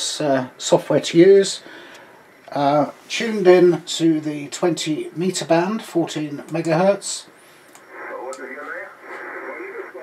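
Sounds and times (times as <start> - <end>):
faint hiss: 0.0 - 5.7, 6.4 - 10.0
thin radio voice: 7.9 - 10.0.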